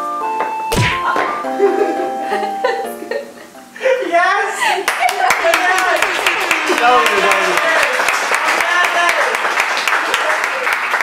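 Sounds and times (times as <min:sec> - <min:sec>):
people laughing: 0:01.4 - 0:08.1
people clapping hands: 0:04.8 - 0:11.0.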